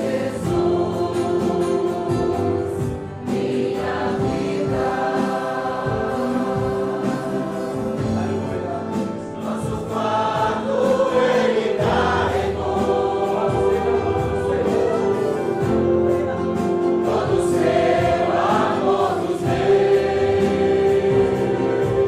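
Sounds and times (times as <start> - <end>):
church band: 0.0 - 22.0
congregation singing a hymn: 0.0 - 22.0
drums keeping steady beat: 0.0 - 22.0.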